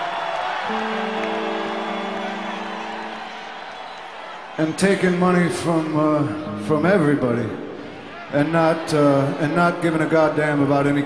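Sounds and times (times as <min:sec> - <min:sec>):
murmuring arena crowd: 0:00.0 - 0:11.0
electric guitar chord ringing: 0:00.6 - 0:04.8.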